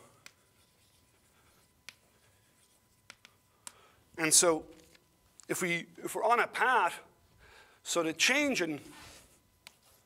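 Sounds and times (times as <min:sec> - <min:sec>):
chalk scratching on blackboard: 0:00.5 - 0:03.2.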